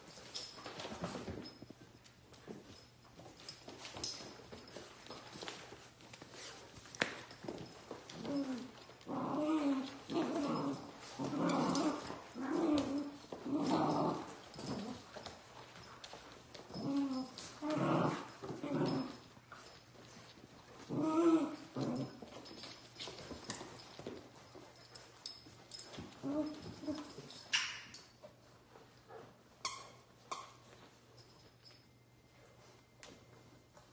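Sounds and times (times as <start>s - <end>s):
puppies play-growling: 3.4s - 27.8s.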